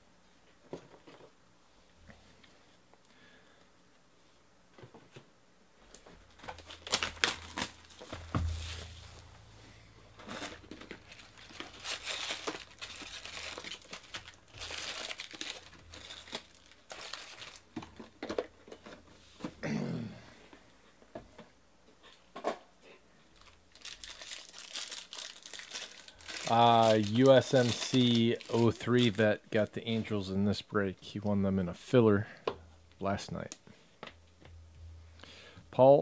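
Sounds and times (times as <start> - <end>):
foil packs rustling: 6.1 - 9.3, 10.2 - 18.5, 23.4 - 29.3
shrink wrap tearing and crinkling: 6.3 - 9.3, 10.2 - 17.9, 23.4 - 29.3.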